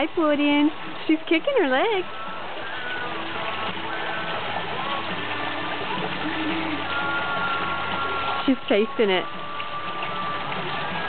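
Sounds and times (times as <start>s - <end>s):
faint music: 0.0s - 11.0s
waterfall splashing into pool: 0.0s - 11.0s.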